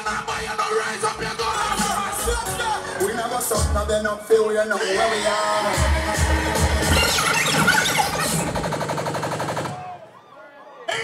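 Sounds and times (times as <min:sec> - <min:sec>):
music with bass: 0:00.0 - 0:08.4.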